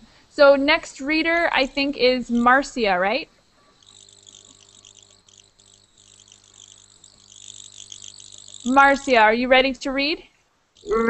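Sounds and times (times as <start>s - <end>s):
low steady hum: 0.1s - 11.0s
high-pitched chirring: 1.0s - 10.2s, 10.8s - 11.0s.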